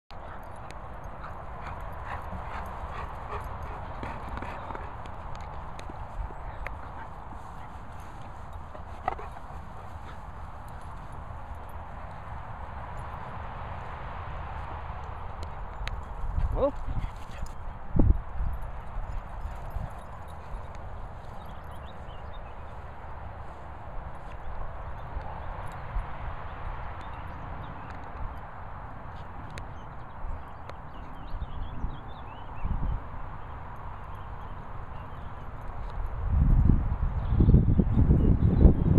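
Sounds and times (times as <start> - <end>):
wind on microphone: 14.5 - 22.7, 23.9 - 38.9.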